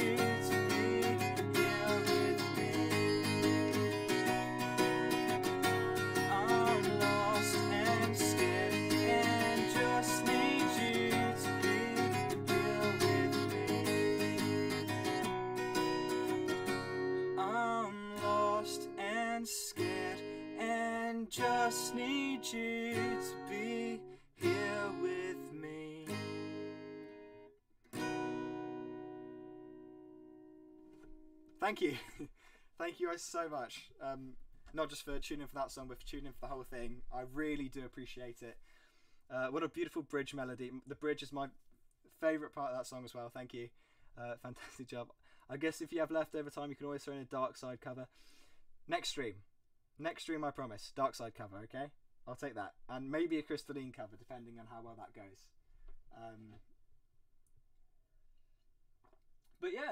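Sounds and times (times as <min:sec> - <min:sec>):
acoustic guitar strumming: 0:00.0 - 0:31.6.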